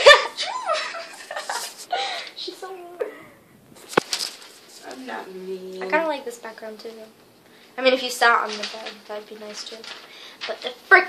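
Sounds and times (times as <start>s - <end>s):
girl squealing laughter: 0.0s - 2.3s.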